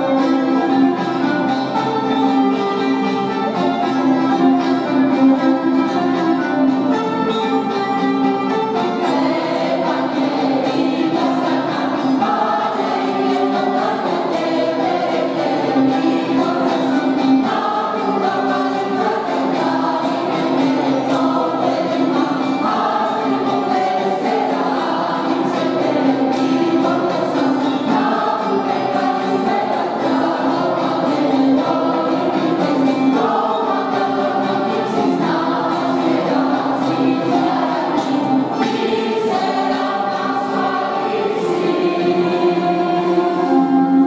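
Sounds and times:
mixed choir singing a carol: 0.0s - 44.0s.

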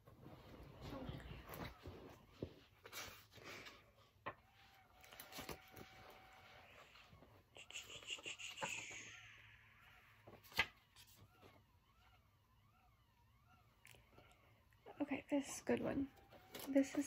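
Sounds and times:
rustles of things moved: 0.0s - 7.4s.

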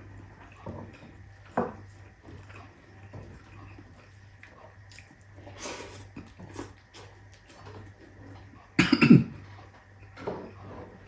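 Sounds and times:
soft chewing and mouth noises: 0.0s - 11.0s.

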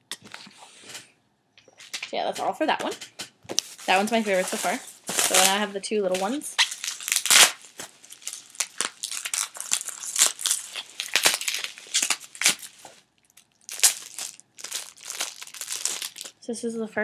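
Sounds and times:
plastic wrapping crinkling: 3.5s - 16.4s.

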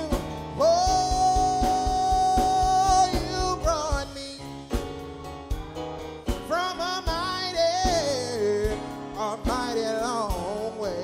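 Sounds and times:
keyboard: 0.0s - 11.0s
steady drumbeat: 0.0s - 11.0s.

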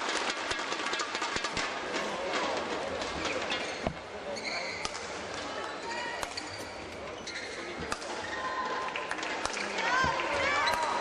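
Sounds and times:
crowd voices: 1.5s - 11.0s
shoes squeaking on court: 3.2s - 5.0s, 5.8s - 8.4s
racket striking shuttlecock: 6.2s - 6.5s, 7.8s - 8.2s.

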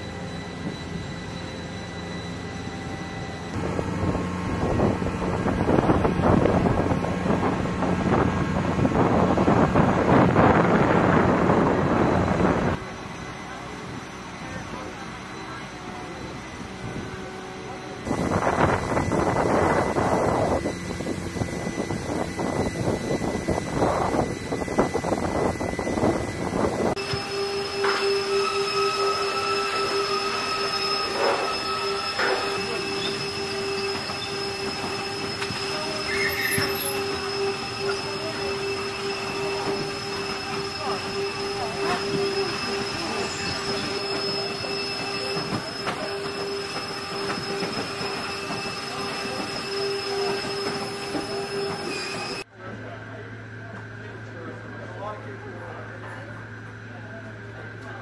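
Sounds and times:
high-pitched equipment whine: 0.0s - 58.0s
wind buffeting microphone: 3.6s - 12.8s.

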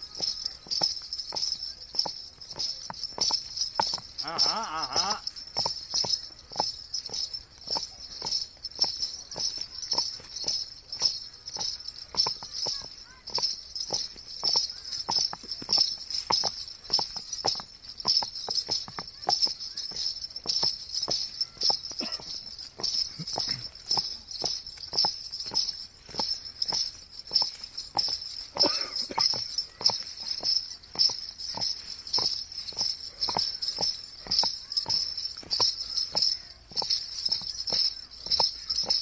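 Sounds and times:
crickets chirping: 0.0s - 39.0s
horse hooves trotting on gravel: 0.0s - 39.0s.

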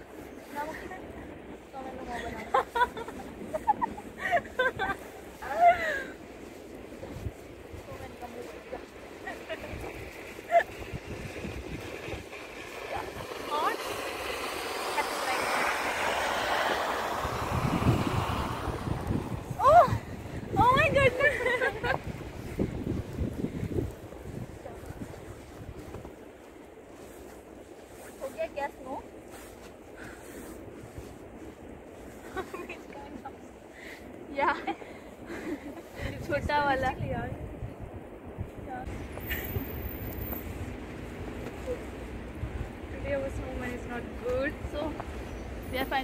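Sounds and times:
wind buffeting microphone: 0.0s - 46.0s
women's voices: 0.5s - 6.1s, 7.8s - 9.9s, 12.8s - 14.0s, 14.8s - 15.8s, 19.5s - 22.0s, 28.2s - 29.0s, 32.4s - 33.3s, 34.3s - 34.8s, 36.0s - 37.4s, 42.9s - 45.0s, 45.6s - 46.0s
woman's high-pitched cry: 5.4s - 6.2s, 19.6s - 20.0s.

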